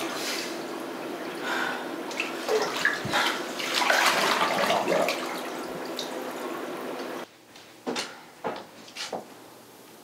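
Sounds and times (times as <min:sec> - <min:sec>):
bathtub water sloshing and splashing: 0:00.0 - 0:07.2
water gurgles: 0:01.2 - 0:06.4.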